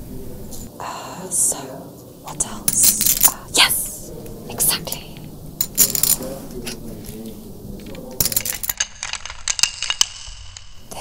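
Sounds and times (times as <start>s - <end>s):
poker chips clinking: 2.4s - 4.0s, 4.6s - 11.0s.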